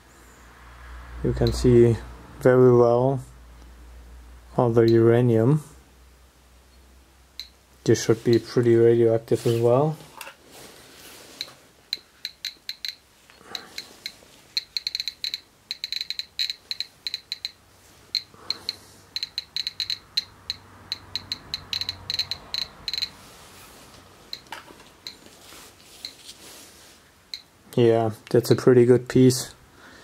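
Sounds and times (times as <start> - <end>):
geiger counter clicking: 1.4 - 1.7, 4.8 - 5.1, 7.4 - 7.6, 11.4 - 23.2, 24.3 - 25.3, 27.3 - 27.5.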